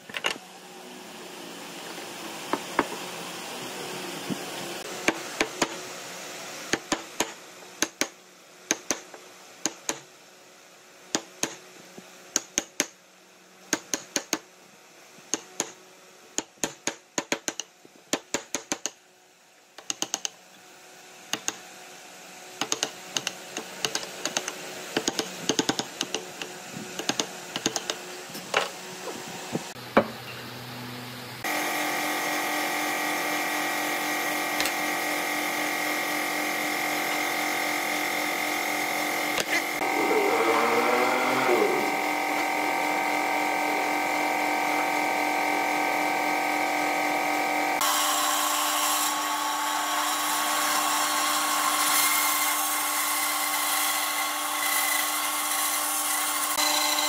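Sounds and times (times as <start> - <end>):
machine hum: 28.3 - 47.8
band saw cutting wood: 31.4 - 57.0.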